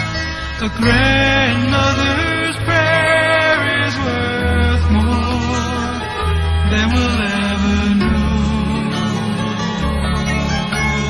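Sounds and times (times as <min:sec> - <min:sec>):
slow song with held notes: 0:00.0 - 0:11.0
steady bass line: 0:00.0 - 0:11.0.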